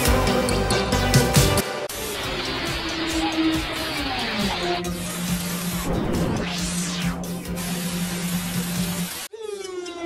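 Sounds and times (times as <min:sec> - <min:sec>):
distorted cartoon music: 0:01.0 - 0:10.0
whooshing sweep: 0:05.7 - 0:07.4.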